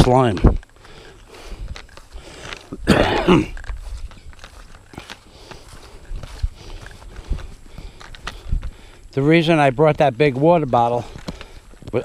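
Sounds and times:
footsteps on wet grass: 0.0s - 12.0s.

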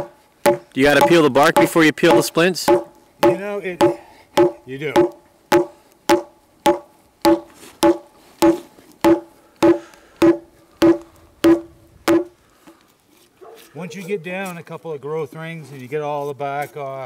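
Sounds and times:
hatchet pounding a log: 0.0s - 12.3s.

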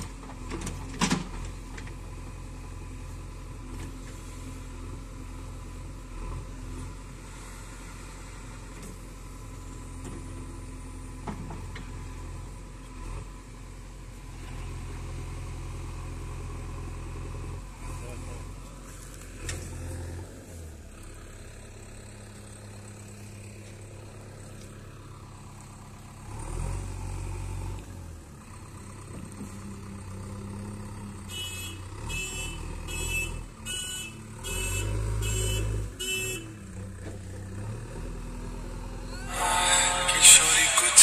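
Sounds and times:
diesel engine running: 0.0s - 33.2s, 36.5s - 41.0s
loud music: 39.2s - 41.0s.

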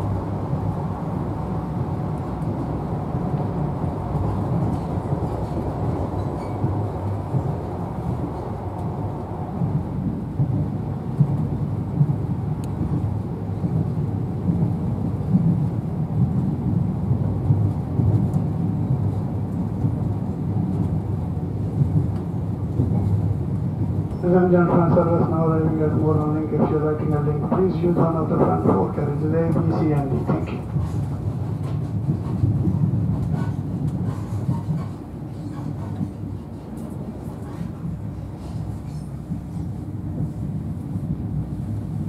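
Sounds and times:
train wheels rumbling on rails: 0.0s - 42.0s.

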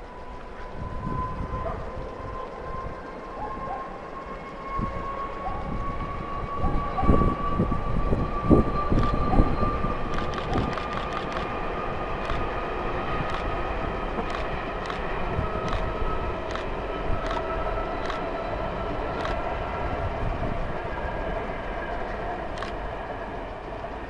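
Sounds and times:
train wheels rumbling on rail: 0.0s - 24.0s.

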